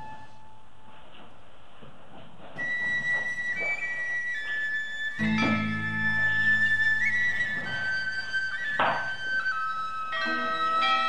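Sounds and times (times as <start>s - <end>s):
flute music: 0.0s - 1.2s, 2.6s - 11.0s.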